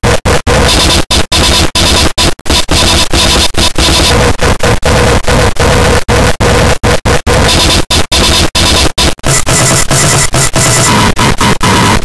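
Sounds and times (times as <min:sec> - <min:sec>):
harsh distorted noise: 0:00.0 - 0:12.0.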